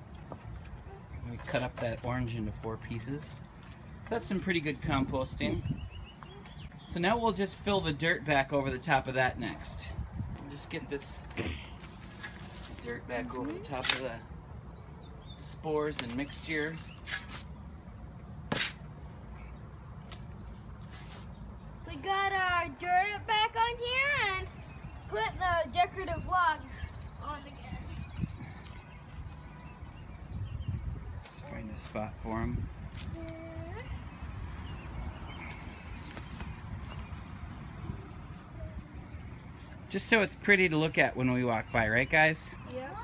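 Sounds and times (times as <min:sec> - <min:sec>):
shovel scraping soil: 0:16.2 - 0:17.5, 0:18.5 - 0:18.9
child speaking: 0:21.8 - 0:28.1, 0:33.1 - 0:34.1, 0:38.2 - 0:39.1, 0:42.6 - 0:43.0.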